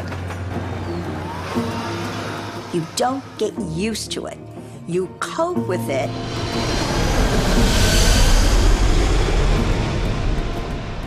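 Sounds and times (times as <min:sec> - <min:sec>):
jet aircraft roar overhead: 0:05.9 - 0:11.0.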